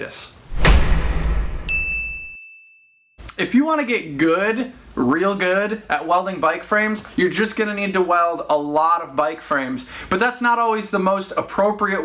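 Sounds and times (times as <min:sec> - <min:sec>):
deep whoosh: 0:00.5 - 0:01.9
high clear ding: 0:01.7 - 0:03.0.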